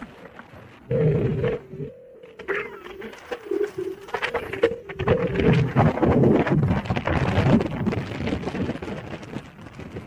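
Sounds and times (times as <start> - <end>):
wind on microphone: 3.4 - 10.0.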